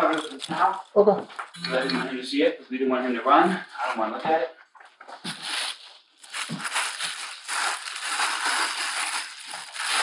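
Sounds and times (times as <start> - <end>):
plastic bag rustling: 0.0 - 1.0, 5.2 - 10.0
cloth rustling: 5.2 - 10.0.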